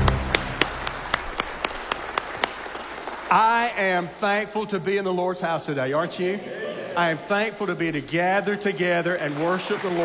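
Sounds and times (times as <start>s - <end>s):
congregation clapping: 0.0s - 4.1s, 8.4s - 10.0s
man speaking into a microphone: 3.3s - 10.0s.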